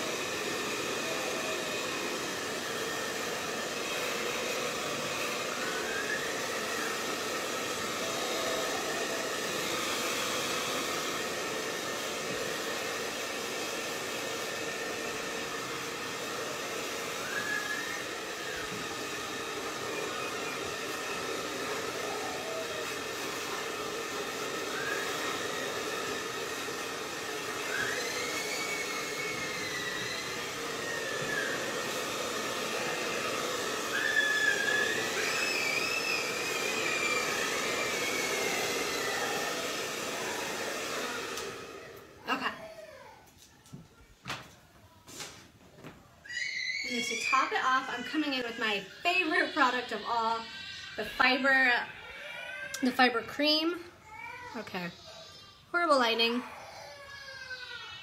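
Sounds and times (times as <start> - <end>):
hair dryer blowing: 0.0 - 44.4, 46.3 - 58.0.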